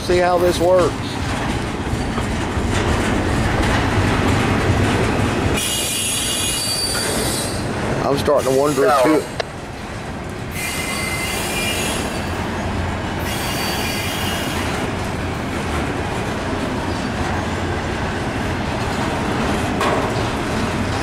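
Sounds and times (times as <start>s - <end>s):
train wheels rumbling on rails: 0.0s - 21.0s
high-pitched wheel squeal: 5.6s - 7.7s, 10.6s - 12.4s, 13.2s - 14.6s.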